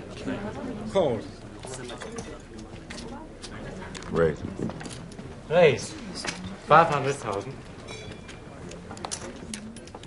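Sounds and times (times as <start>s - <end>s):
low background voices: 0.0s - 10.0s.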